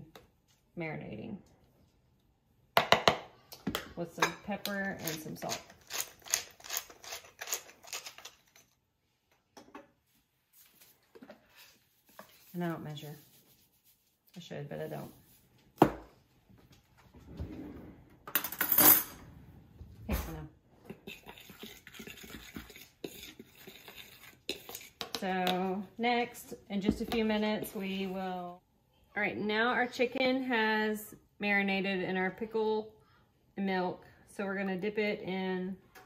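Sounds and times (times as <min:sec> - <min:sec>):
faint handling sounds: 0:06.4 - 0:17.2
fork stirring flour in bowl: 0:11.5 - 0:14.2, 0:20.9 - 0:25.8.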